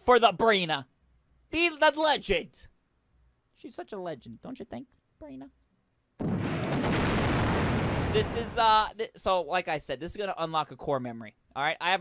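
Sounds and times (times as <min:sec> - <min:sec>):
explosion-like burst: 0:06.2 - 0:08.6.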